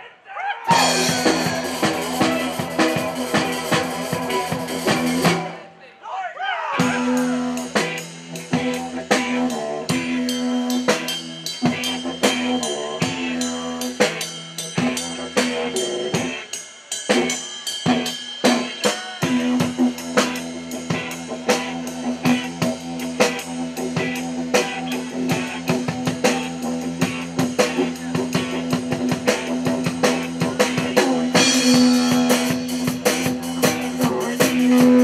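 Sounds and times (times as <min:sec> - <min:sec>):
didgeridoo drone: 0:00.7 - 0:05.5, 0:06.8 - 0:16.5, 0:19.2 - 0:35.0
drum kit beat: 0:00.7 - 0:05.6, 0:06.8 - 0:35.0.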